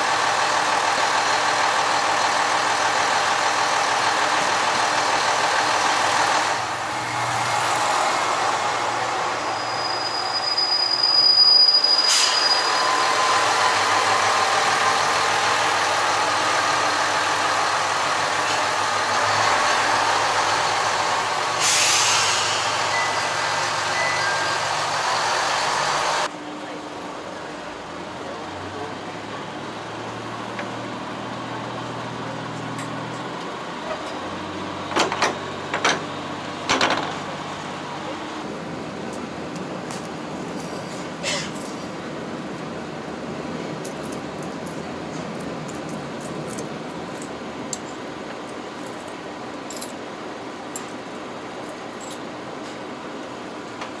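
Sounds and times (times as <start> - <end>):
diesel railcar engine: 0.0 - 54.0
high squeal of wheels: 9.2 - 13.5.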